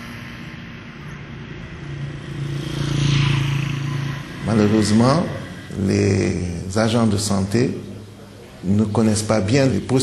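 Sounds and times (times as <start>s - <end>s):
passing vehicle engine hum: 0.0s - 6.8s.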